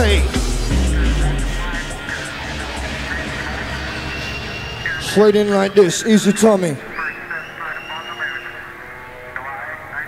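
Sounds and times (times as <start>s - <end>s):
drum and bass mix: 0.0s - 6.8s.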